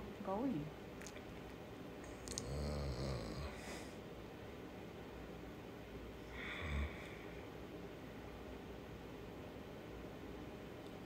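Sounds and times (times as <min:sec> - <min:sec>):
mouth click: 0:02.2 - 0:02.5.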